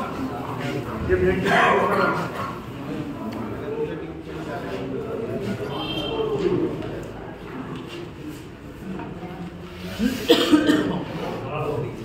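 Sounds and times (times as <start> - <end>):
murmur of voices: 0.0 - 12.0
loud cough: 10.0 - 11.1.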